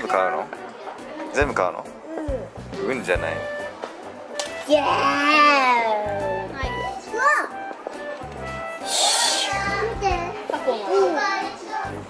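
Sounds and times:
young children chattering: 0.0s - 2.7s, 4.6s - 7.9s, 8.8s - 12.0s
background music with bass: 1.4s - 3.8s
short hiss: 8.8s - 9.6s.

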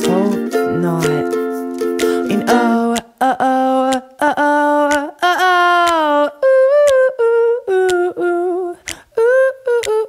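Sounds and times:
person humming a melody: 0.0s - 10.0s.

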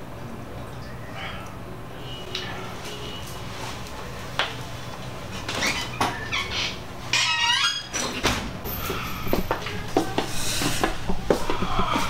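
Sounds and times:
glass door squeaking: 5.4s - 8.6s.

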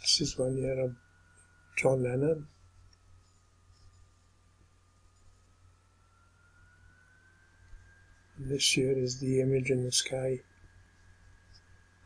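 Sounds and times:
low hum: 0.0s - 12.0s
thin whine rising in pitch: 0.0s - 12.0s.

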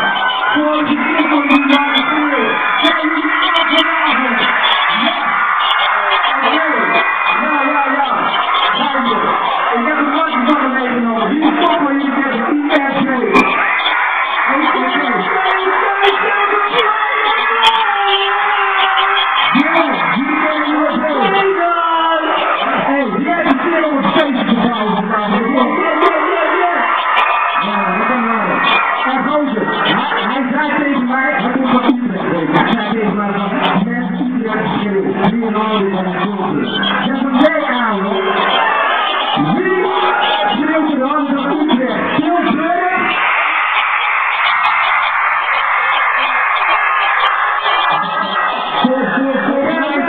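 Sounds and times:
crowd noise: 0.0s - 50.0s
live concert music: 0.0s - 50.0s
man speaking into a microphone: 0.4s - 5.4s, 6.2s - 13.5s, 14.4s - 17.2s, 19.5s - 26.9s, 27.6s - 38.4s, 39.4s - 43.1s, 48.8s - 50.0s.

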